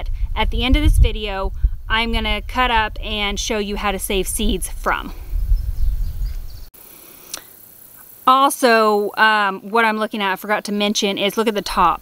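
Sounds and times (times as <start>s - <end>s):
wind buffeting microphone: 0.0s - 6.7s.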